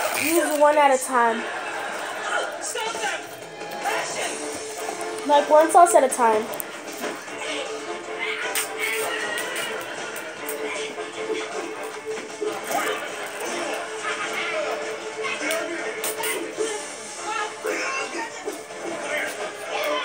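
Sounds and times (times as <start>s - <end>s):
background music: 0.0s - 20.0s
voices of dialogue: 0.2s - 9.7s, 13.6s - 20.0s.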